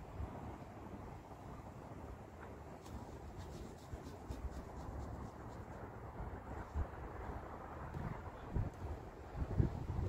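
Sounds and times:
wind on microphone: 0.0s - 10.0s.

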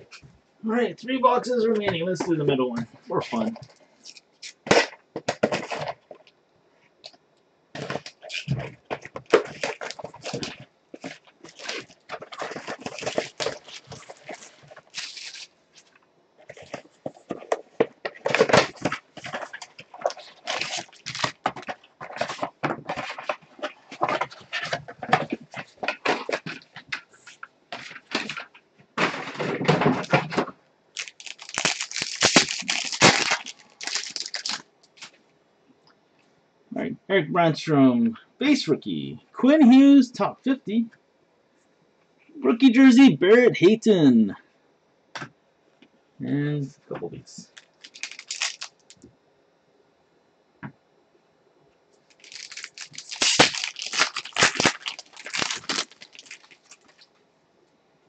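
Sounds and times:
foil packs rustling: 7.8s - 15.9s, 16.5s - 35.2s, 47.4s - 49.0s, 52.1s - 57.1s
plastic shrink wrap crinkling: 7.8s - 15.9s, 16.6s - 28.5s, 31.0s - 35.2s, 47.4s - 49.0s, 52.1s - 57.1s.

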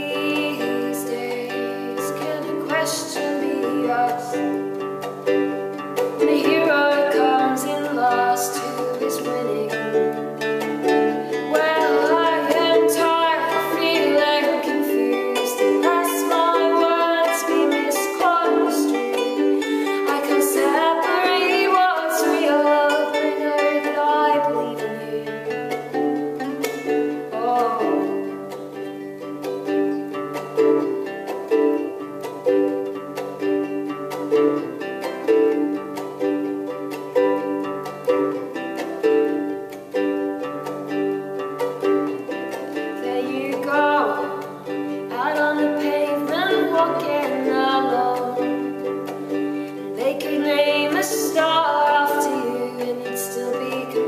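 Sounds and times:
woman singing: 0.0s - 29.0s, 42.0s - 54.0s
ukulele and guitar strumming: 0.0s - 54.0s.

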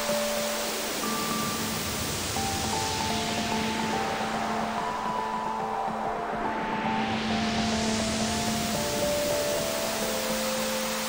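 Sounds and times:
hissing filtered noise wash: 0.0s - 11.0s
sequenced synth notes: 0.0s - 11.0s.

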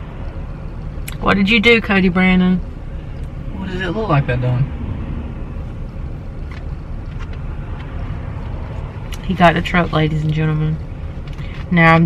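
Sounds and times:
road noise: 0.0s - 12.0s
truck engine rumble: 0.0s - 12.0s.

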